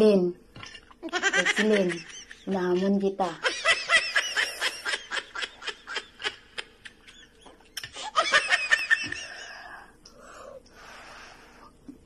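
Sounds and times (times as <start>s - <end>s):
high-pitched laughing: 0.6s - 9.5s.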